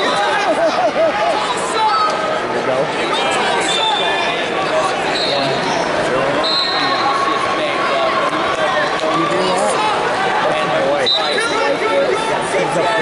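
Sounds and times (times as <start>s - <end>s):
crowd shouting and talking: 0.0s - 13.0s
high whistle blasts: 6.4s - 7.0s.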